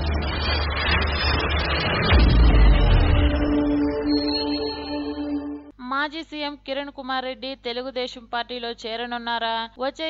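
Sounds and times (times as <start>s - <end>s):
low rumble: 0.0s - 5.7s
whoosh sound effect: 0.0s - 5.7s.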